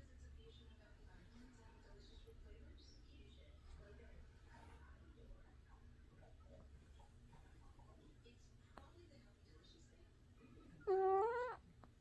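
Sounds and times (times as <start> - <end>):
cat meowing: 10.8 - 11.6.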